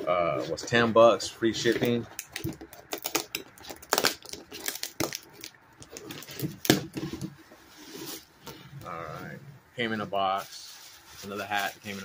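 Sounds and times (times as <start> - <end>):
packing paper rustling: 1.6 - 8.3, 10.3 - 12.0.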